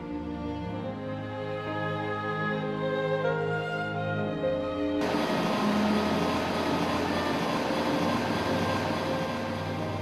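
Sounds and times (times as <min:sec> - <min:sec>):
lorry driving past: 0:05.0 - 0:10.0.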